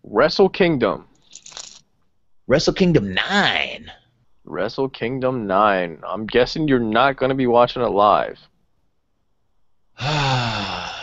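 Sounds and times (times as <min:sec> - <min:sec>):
man sighing: 0:10.0 - 0:11.0.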